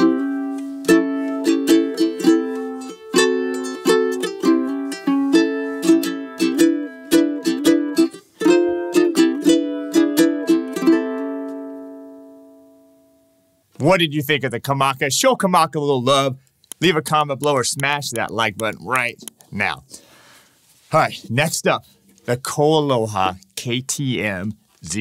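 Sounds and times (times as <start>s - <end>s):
ukulele strummed chords: 0.0s - 13.3s, 16.8s - 19.3s.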